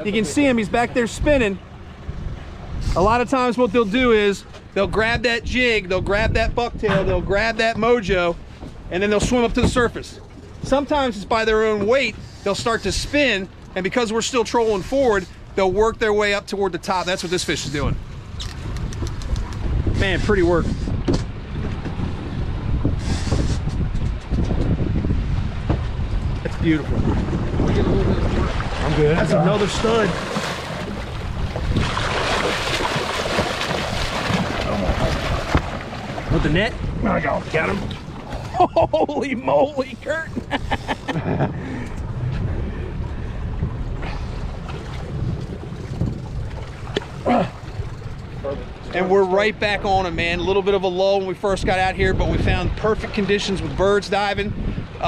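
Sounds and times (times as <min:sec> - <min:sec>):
wind buffeting microphone: 0:00.0 - 0:13.6, 0:17.6 - 0:55.0
outboard motors rumbling: 0:00.0 - 0:55.0
water against hull: 0:00.0 - 0:55.0.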